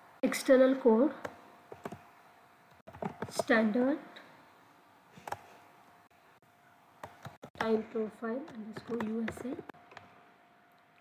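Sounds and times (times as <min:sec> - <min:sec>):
keyboard keystrokes: 0:08.4 - 0:10.2.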